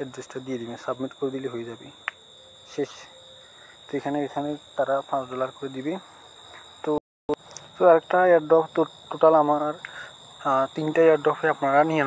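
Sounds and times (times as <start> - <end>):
man speaking: 0.0 - 2.0, 2.7 - 3.2, 3.9 - 6.0, 7.8 - 12.0.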